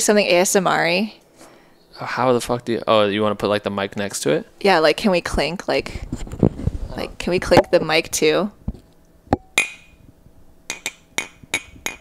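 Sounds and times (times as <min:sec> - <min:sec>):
ceramic mugs clinking: 0:10.7 - 0:12.0.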